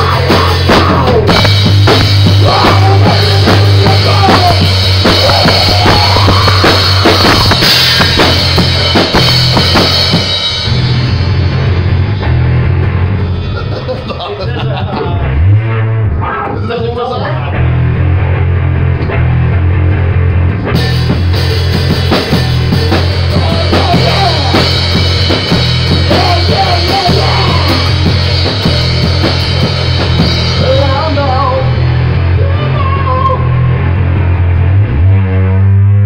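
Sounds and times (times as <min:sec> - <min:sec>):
drum kit: 0:00.0 - 0:36.0
electric bass sustained notes: 0:00.0 - 0:36.0
loud rock music: 0:00.0 - 0:36.0.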